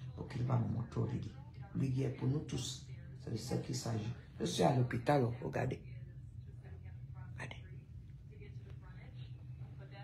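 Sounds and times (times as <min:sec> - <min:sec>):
low room hum: 0:00.0 - 0:10.0
woman speaking softly: 0:00.0 - 0:10.0.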